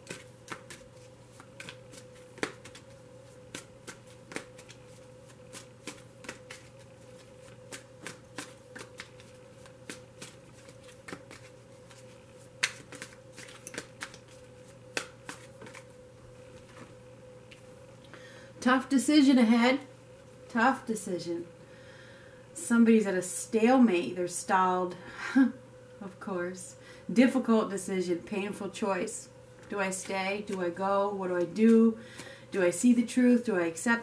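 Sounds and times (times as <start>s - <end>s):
cards being shuffled: 0.0s - 17.7s
faint steady hum: 0.0s - 34.0s.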